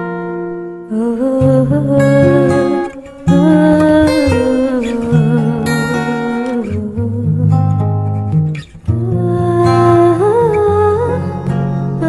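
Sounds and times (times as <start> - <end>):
person singing devotional song: 0.9 - 7.5.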